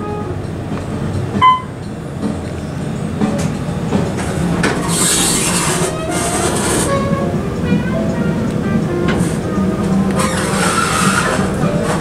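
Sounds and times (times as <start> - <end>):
elevator doors opening: 0.0 - 12.0.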